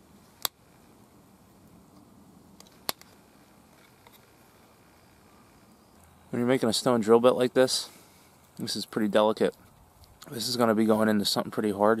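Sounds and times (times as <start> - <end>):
flint flakes clicking off: 0.2 - 0.8, 1.6 - 6.2.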